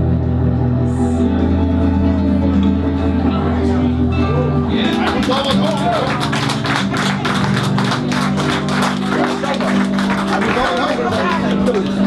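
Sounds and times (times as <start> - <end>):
acoustic guitar strummed: 0.0 - 12.0
sustained keyboard chords: 0.0 - 12.0.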